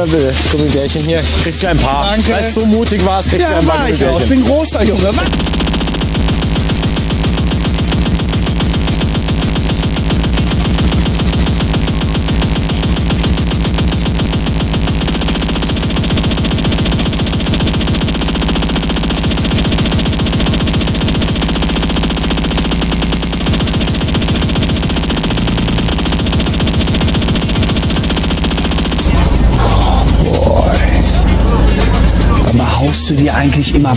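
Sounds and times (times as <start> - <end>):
bass drone: 0.0 - 33.9
fast distorted kick drums: 2.6 - 33.9.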